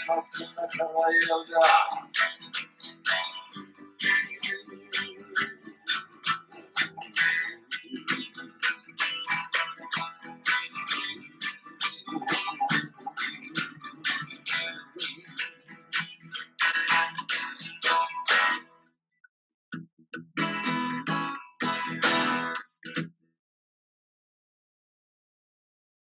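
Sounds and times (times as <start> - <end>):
acoustic guitar strumming: 0.0 - 18.7, 20.2 - 23.1.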